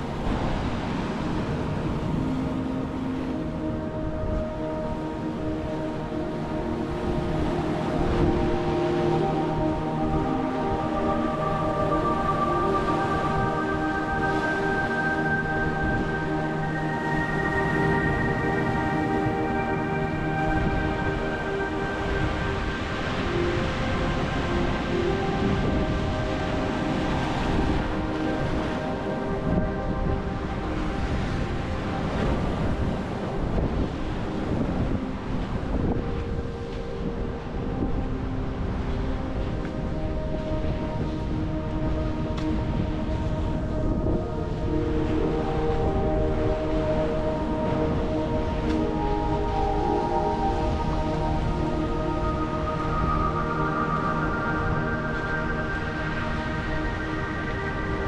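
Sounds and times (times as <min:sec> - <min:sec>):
slow background music: 0:00.0 - 0:58.0
wind buffeting microphone: 0:00.0 - 0:58.0.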